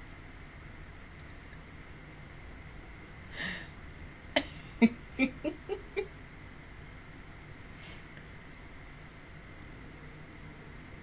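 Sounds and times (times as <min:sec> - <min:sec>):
woman laughing softly: 0:03.3 - 0:03.7, 0:04.4 - 0:06.1.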